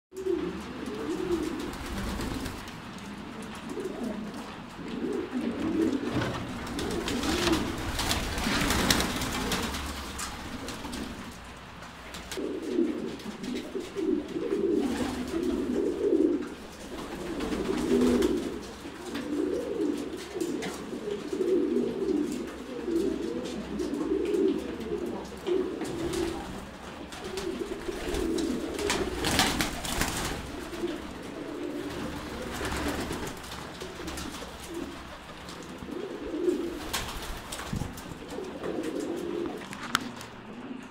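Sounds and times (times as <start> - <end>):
pigeons cooing: 0.1 - 40.9
rustling and scuffling: 0.8 - 40.8.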